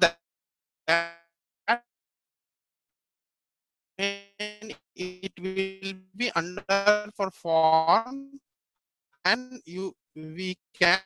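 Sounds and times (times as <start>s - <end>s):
person speaking over video call: 4.0s - 8.4s, 9.3s - 11.0s.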